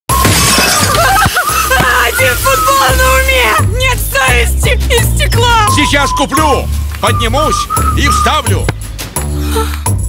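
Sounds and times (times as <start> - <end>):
glass window shattering: 0.1 - 2.6
music playing: 0.1 - 10.0.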